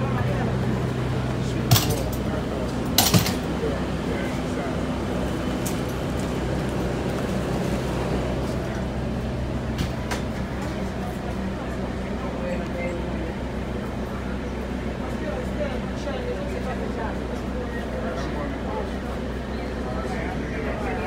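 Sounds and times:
bus engine droning: 0.0 - 21.0.

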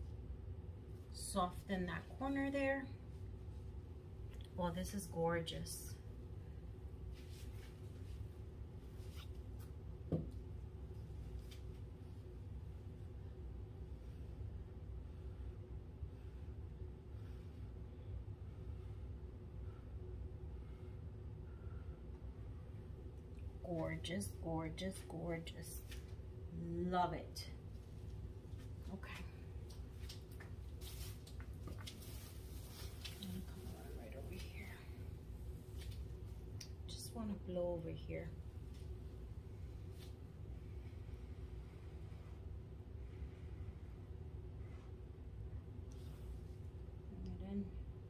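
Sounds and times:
low room hum: 0.0 - 48.0.

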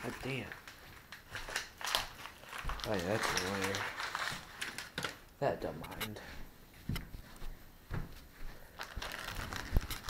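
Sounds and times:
rustling handling noise: 0.0 - 10.0.

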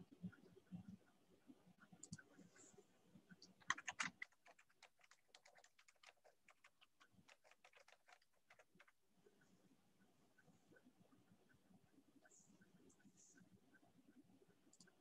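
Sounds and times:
typing on keyboard: 3.4 - 9.0.

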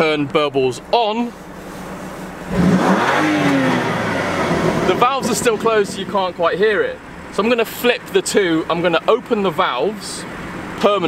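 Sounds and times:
car engine revving: 1.3 - 8.4.

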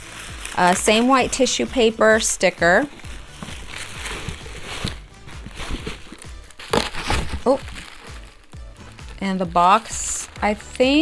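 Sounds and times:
tissue paper rustling: 0.0 - 11.0.

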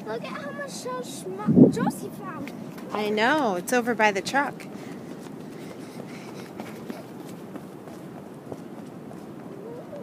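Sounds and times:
running footsteps on sand: 2.4 - 10.0.

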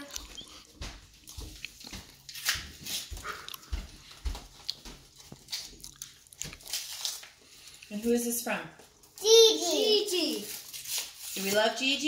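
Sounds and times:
paper rustling: 6.4 - 7.8, 9.2 - 12.0
paper envelopes tearing: 6.5 - 7.5, 10.2 - 11.7.

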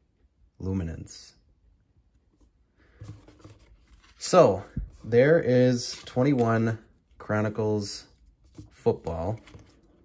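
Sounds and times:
cards rustling and scraping: 2.3 - 10.0.

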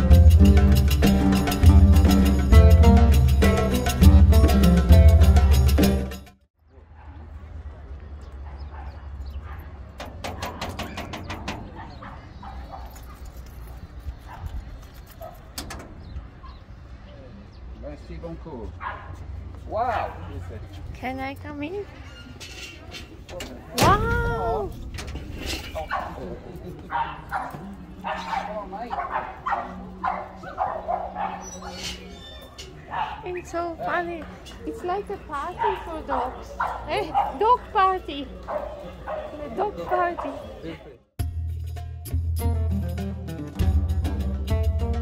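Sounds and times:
dogs yipping whimpering and barking: 10.3 - 15.5, 25.8 - 34.5.

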